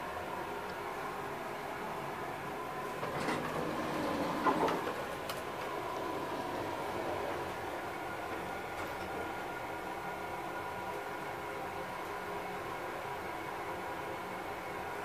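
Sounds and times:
mechanical hum: 0.0 - 15.0
elevator doors sliding: 2.8 - 9.3.

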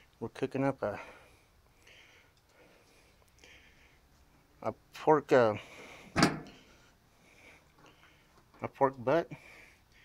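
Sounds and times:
metal door clunk: 6.1 - 6.6.

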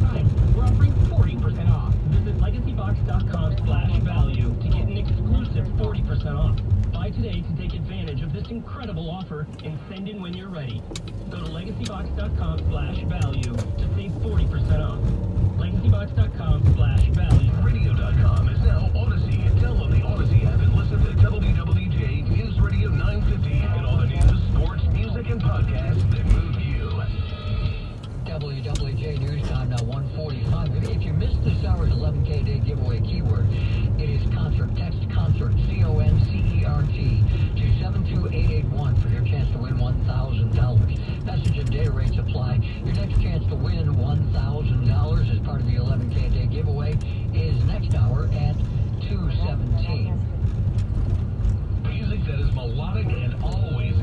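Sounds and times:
radio voice: 0.0 - 50.4, 51.7 - 54.0
radio music: 0.0 - 54.0
road and engine rumble: 0.0 - 54.0.

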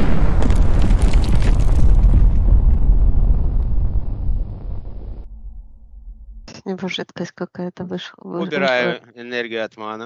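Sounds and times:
explosion blast with crackling: 0.0 - 6.1
deep rumble: 0.0 - 6.6.

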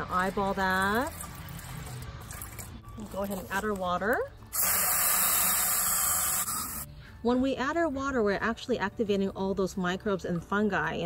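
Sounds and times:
water running into watering can: 0.0 - 6.5.

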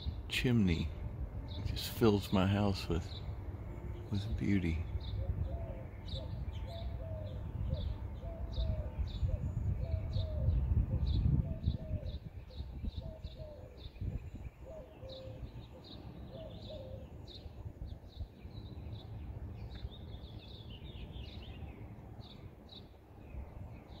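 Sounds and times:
low background rumble: 0.0 - 14.6
dove cooing: 5.1 - 13.9, 14.6 - 17.1.

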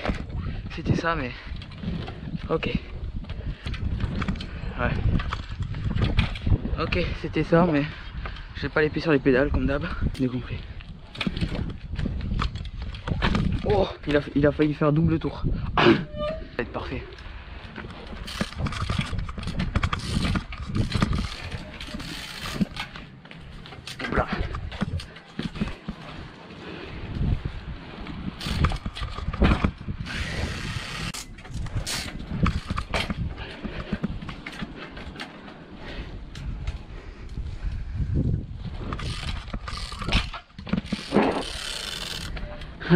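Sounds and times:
sharp clicks and knocks from bike: 0.0 - 0.6, 1.4 - 6.7, 9.9 - 14.7, 17.1 - 37.8, 38.6 - 42.8
bicycle rolling on asphalt: 0.0 - 15.7, 16.8 - 42.9
wind rumble on microphone: 0.0 - 42.9.

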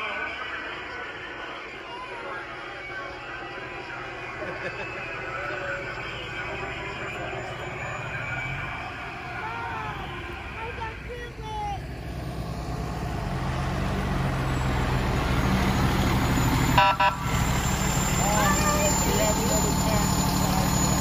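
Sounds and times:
truck diesel engine rumble: 0.0 - 21.0.

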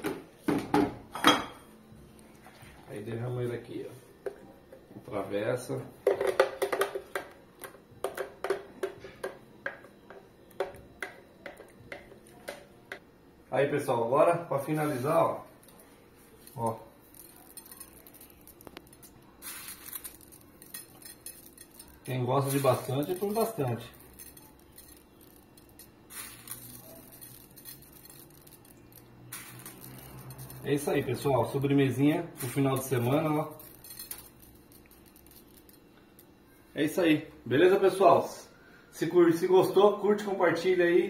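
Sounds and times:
sprinkles rustling and ticking: 14.8 - 31.2, 32.4 - 36.6.

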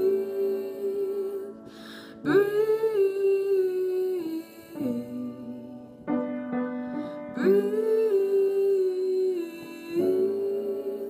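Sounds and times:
woman singing a slow ballad: 0.0 - 6.1, 7.0 - 11.0.

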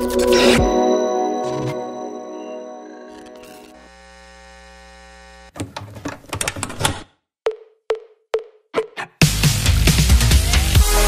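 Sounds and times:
electronic hum: 3.1 - 5.5.

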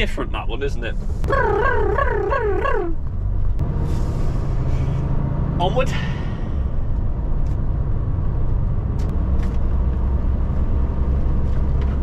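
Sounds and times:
lorry engine and road drone: 0.1 - 12.0
high warbling sound: 1.3 - 3.0.

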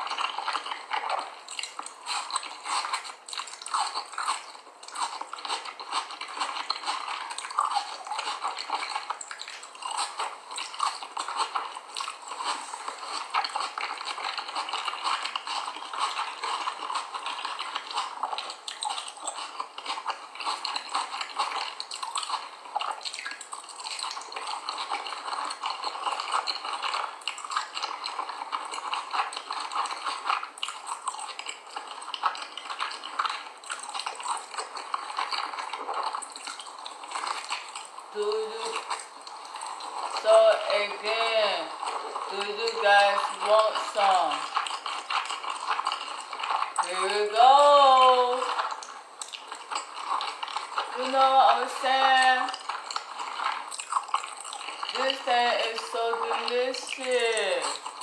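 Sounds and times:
chewing with fine crunching: 0.0 - 58.0.

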